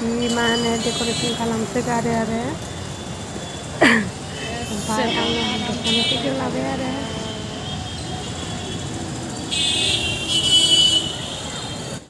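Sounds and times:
people's voices: 0:00.0 - 0:02.8, 0:03.8 - 0:07.9
vehicle traffic: 0:00.0 - 0:12.0
car horns tooting: 0:03.6 - 0:06.6, 0:07.2 - 0:12.0.

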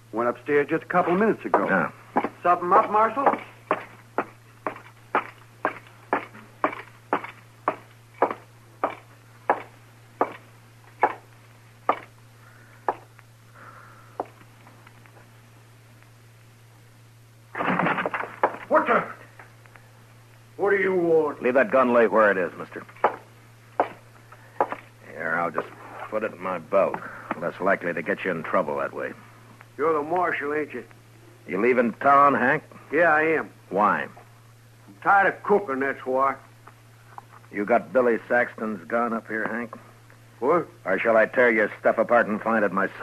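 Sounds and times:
low recording hum: 0:00.0 - 0:43.0
man's footsteps walking: 0:01.0 - 0:12.2, 0:12.9 - 0:13.3, 0:22.9 - 0:24.9.

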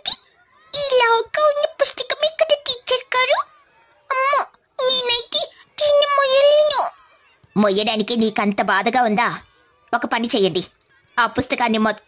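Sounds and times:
high-pitched cartoon child's voice: 0:00.0 - 0:03.5, 0:04.1 - 0:07.0.

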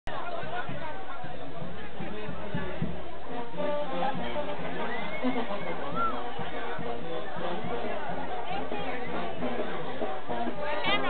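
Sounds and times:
crowd chattering: 0:00.0 - 0:11.0
brass band playing: 0:02.1 - 0:11.0.

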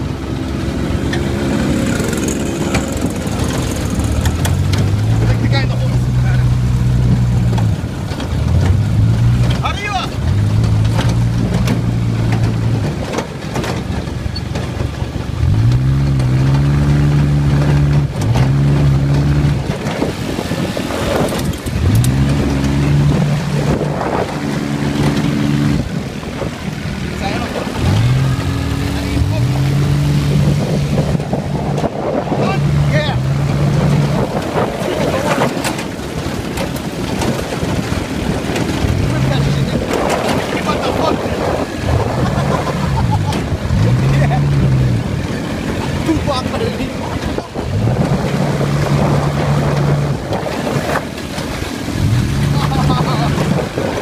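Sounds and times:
buggy engine accelerating: 0:00.0 - 0:54.0.

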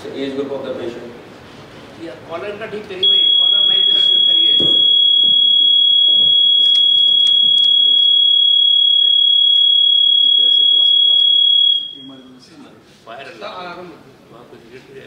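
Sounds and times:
microphone feedback squeal: 0:03.0 - 0:12.4.

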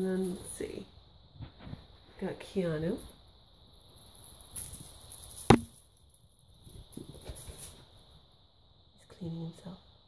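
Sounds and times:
sharp knock: 0:05.5 - 0:05.7.

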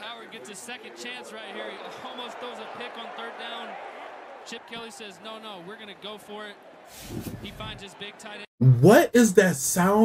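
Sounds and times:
stadium crowd noise: 0:00.0 - 0:08.5
announcer talking: 0:08.6 - 0:10.0.

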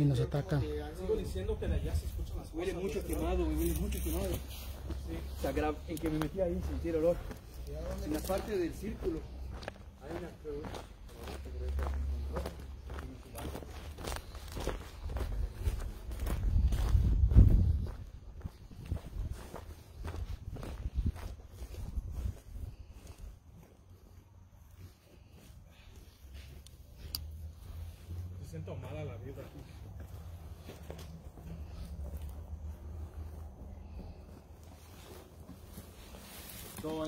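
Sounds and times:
footsteps on grass and dirt: 0:00.1 - 0:37.0
low rumbling on microphone: 0:15.7 - 0:19.4.

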